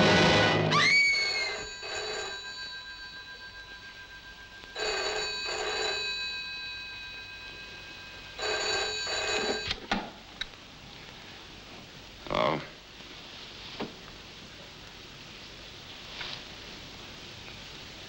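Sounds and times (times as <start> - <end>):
telephone bell ringing: 0.8 - 9.8.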